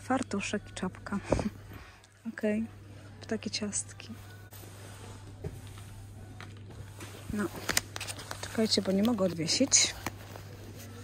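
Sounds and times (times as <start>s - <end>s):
faint shop background music: 0.0s - 11.0s.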